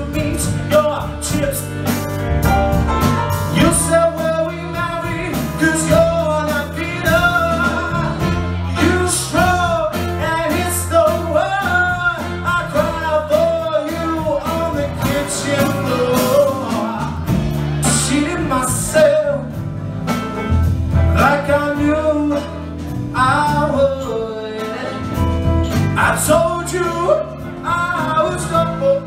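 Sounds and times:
man singing: 0.0s - 2.2s, 3.3s - 19.7s, 20.9s - 29.0s
electric bass: 0.0s - 29.0s
drums with cymbal hits: 0.1s - 28.8s.

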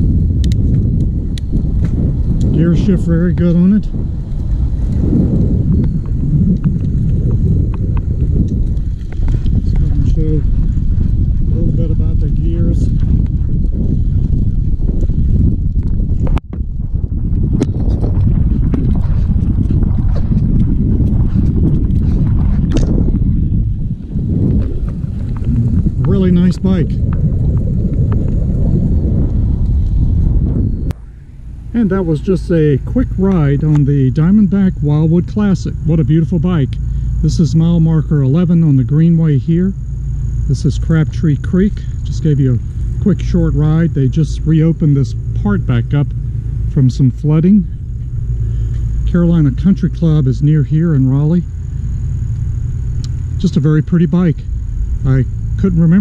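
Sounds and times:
bicycle tyres rolling on pavement: 0.0s - 56.0s
wind buffeting microphone: 0.0s - 56.0s.

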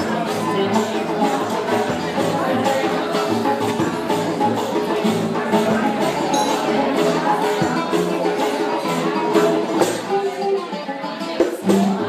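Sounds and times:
upright double bass: 0.0s - 10.6s, 11.4s - 12.0s
plucked oud melody: 0.0s - 12.0s.

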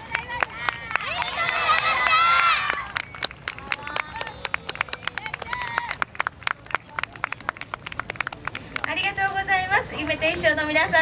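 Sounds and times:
audience hand clapping: 0.0s - 9.1s.

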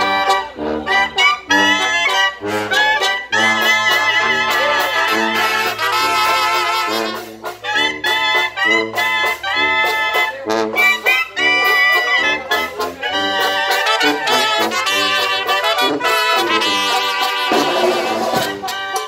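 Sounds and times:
brass band playing: 0.0s - 19.0s.

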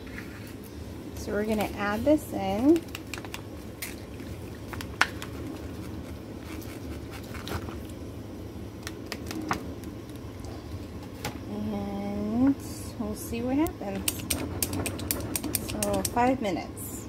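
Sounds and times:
water boiling in saucepan: 0.0s - 17.0s.

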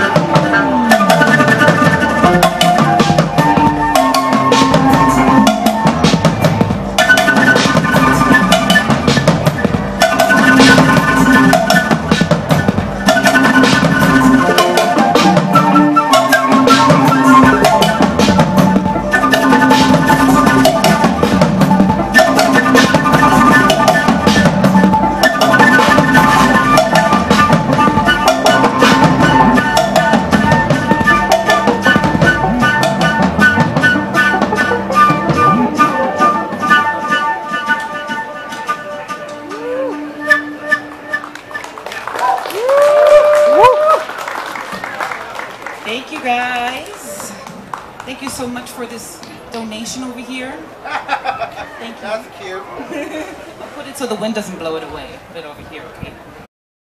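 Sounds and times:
drum kit beat: 0.0s - 40.2s
flute melody: 0.0s - 45.3s.

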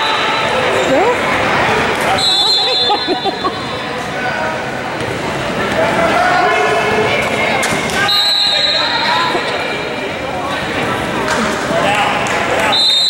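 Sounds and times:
indistinct voices in gym: 0.0s - 13.0s.

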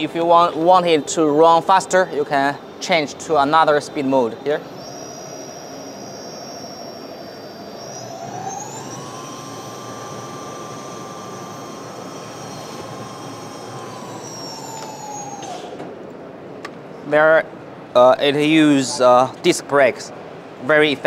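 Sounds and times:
electric motor whining: 0.0s - 15.9s.

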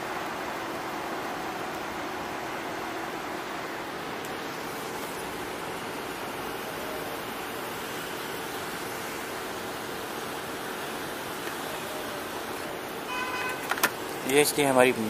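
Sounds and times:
traffic and road noise: 0.0s - 15.0s.

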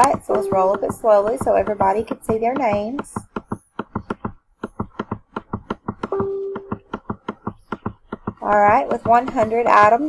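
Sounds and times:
rapid computer mouse clicks: 0.0s - 10.0s.

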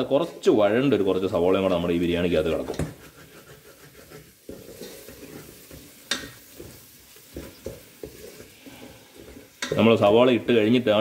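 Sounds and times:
onions sizzling in oil: 0.0s - 11.0s
spatula scraping and knocking pan: 1.5s - 10.7s.

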